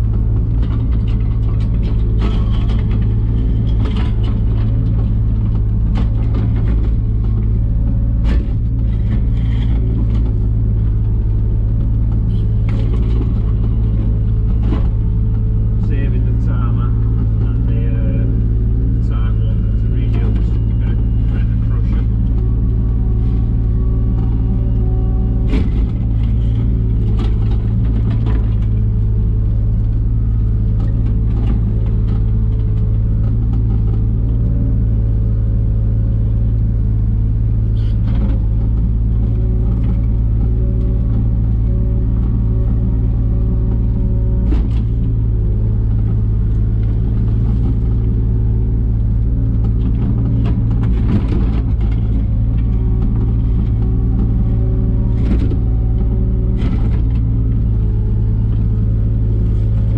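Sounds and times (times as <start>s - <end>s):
diesel engine running under load: 0.0s - 59.9s.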